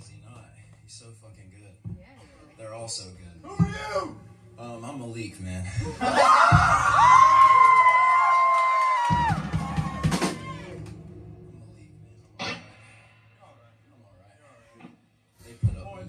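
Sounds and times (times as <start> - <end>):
rock guitar and drums: 5.8 - 8.2, 9.0 - 11.5, 12.3 - 13.4
cymbal crash: 9.7 - 14.0.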